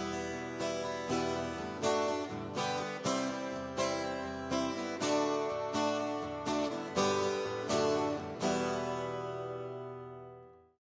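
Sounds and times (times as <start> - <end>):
plucked string chords: 0.0 - 10.6.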